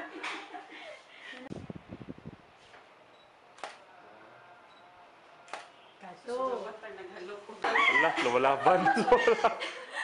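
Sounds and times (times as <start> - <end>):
camera shutter click: 3.6 - 3.8, 5.5 - 5.8.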